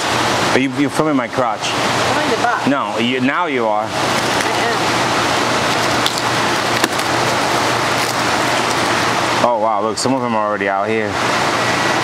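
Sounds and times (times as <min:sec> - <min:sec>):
plastic cling wrap crinkling: 0:05.6 - 0:09.2.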